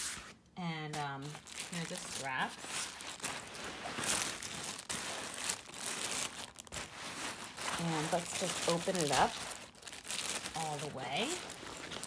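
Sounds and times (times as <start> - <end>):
tote bag rustling and crinkling: 0.9 - 12.0.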